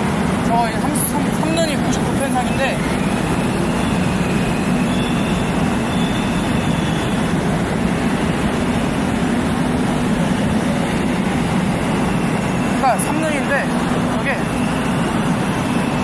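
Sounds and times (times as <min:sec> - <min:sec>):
electric train running: 0:00.0 - 0:16.0
faint high wheel squeal: 0:01.5 - 0:07.5, 0:14.2 - 0:16.0.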